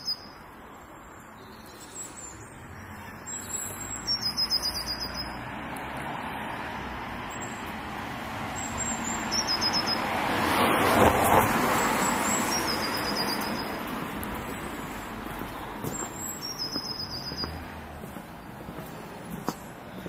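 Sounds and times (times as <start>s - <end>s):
car passing: 2.2s - 20.0s.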